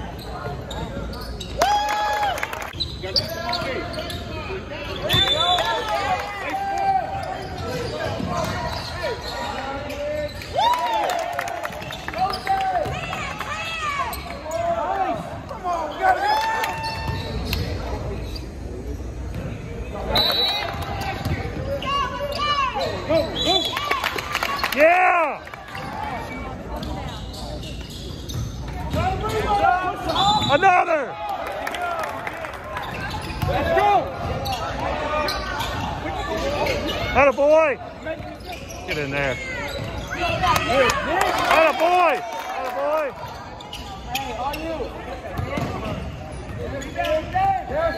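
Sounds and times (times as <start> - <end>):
sneakers squeaking on floor: 0.0 - 1.6, 2.7 - 6.1, 7.1 - 10.6, 11.8 - 13.2, 13.8 - 23.7, 25.7 - 30.7, 32.8 - 41.0, 43.2 - 47.9
voices in hall: 0.0 - 47.9.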